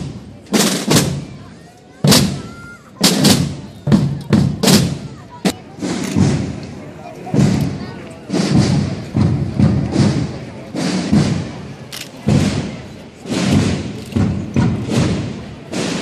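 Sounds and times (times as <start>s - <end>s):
marching drums beating: 0.0s - 16.0s.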